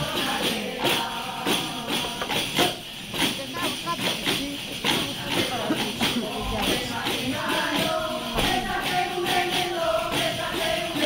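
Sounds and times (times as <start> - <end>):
frame drums with jingles: 0.0 - 11.0
voices singing: 0.0 - 11.0.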